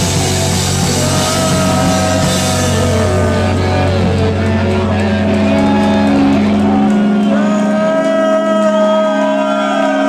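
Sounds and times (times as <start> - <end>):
bass guitar: 0.0 - 10.0
distorted electric guitars: 0.0 - 10.0.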